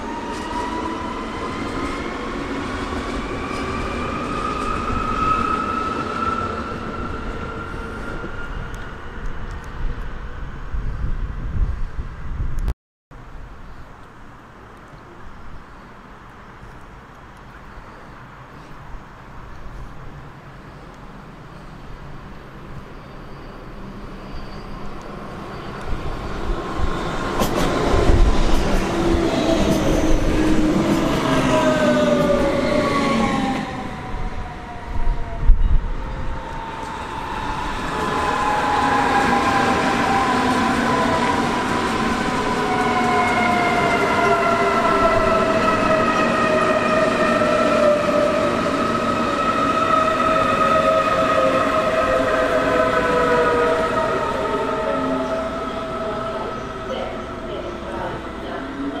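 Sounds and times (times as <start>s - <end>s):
rail and wheel noise: 0.0s - 59.0s.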